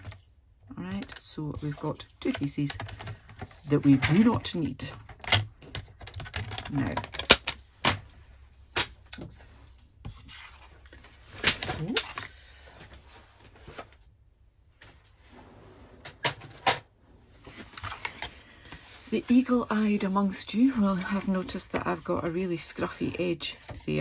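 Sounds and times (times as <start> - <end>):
paper rustling: 8.7 - 14.1, 17.3 - 24.0.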